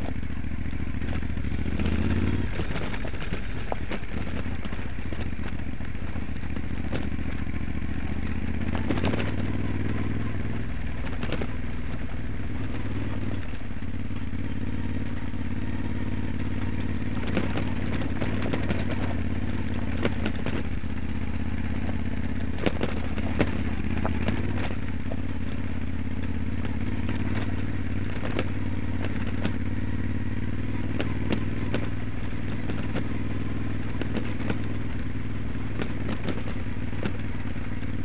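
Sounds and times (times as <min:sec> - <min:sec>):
motorcycle engine pulling: 0:00.0 - 0:38.0
stones clattering on gravel: 0:01.0 - 0:07.5, 0:16.5 - 0:29.8.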